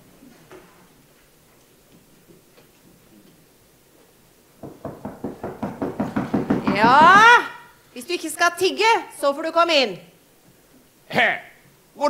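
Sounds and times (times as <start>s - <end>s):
rapid knocking on a door: 4.6s - 7.5s.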